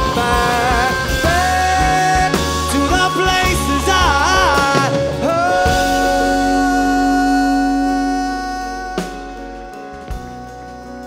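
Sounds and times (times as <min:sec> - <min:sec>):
man singing held high note: 0:00.0 - 0:11.0.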